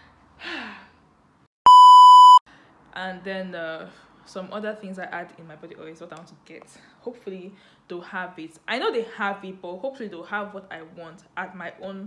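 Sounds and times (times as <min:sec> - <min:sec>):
breathy sigh: 0:00.4 - 0:01.0
steady test tone beep: 0:01.7 - 0:02.4.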